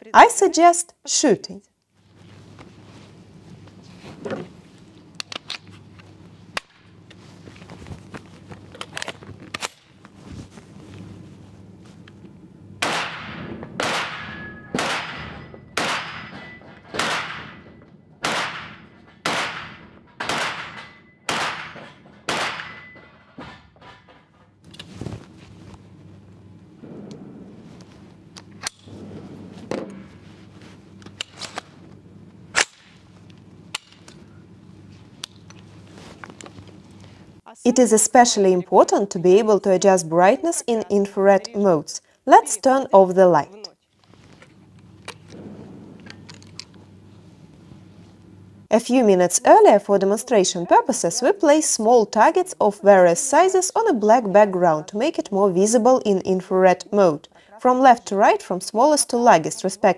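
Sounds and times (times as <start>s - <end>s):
rifle handling clicks and clatter: 5.2s - 6.8s, 31.0s - 31.7s, 33.7s - 34.2s, 46.0s - 46.8s
rifle shots echoing indoors: 12.8s - 23.0s, 45.3s - 46.3s.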